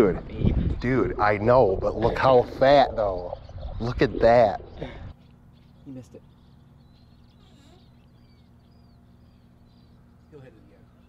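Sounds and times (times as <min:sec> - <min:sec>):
low steady hum: 0:00.0 - 0:11.0
short bird chirps: 0:04.8 - 0:10.2.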